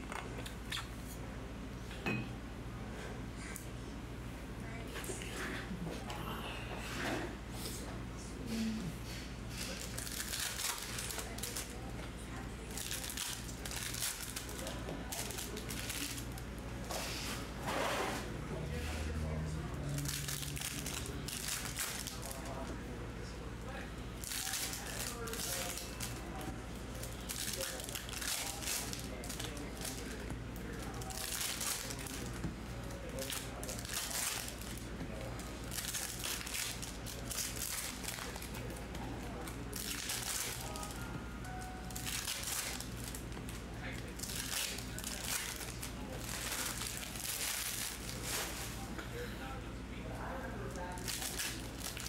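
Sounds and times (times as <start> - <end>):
steady low hum: 0.0 - 52.0
foil wrappers crinkling: 9.6 - 16.6, 19.8 - 22.8, 24.2 - 41.1, 41.8 - 48.9, 50.7 - 52.0.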